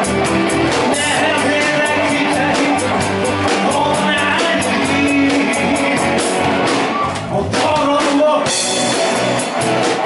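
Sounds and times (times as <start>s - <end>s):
drum kit: 0.0s - 10.0s
electric guitars: 0.0s - 10.0s
man singing: 0.8s - 9.5s.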